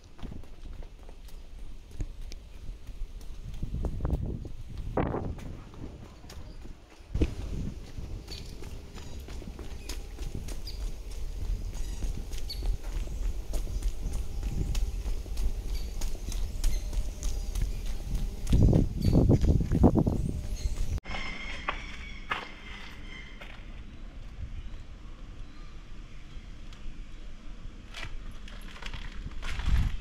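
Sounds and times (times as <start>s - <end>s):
hard-soled footsteps on cobblestones: 0.0s - 21.0s
wind rumble on microphone: 1.6s - 21.0s, 29.0s - 30.0s.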